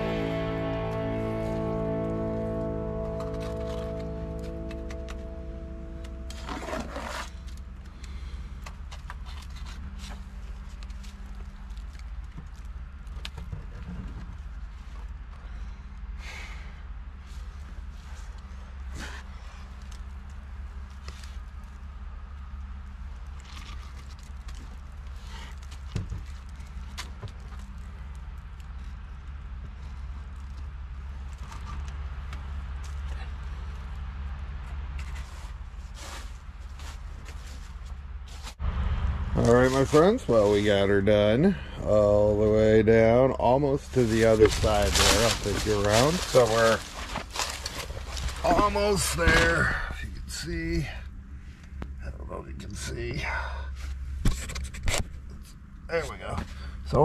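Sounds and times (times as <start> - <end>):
low rumble: 0.0 - 57.0
trowel scraping mortar: 6.4 - 7.4.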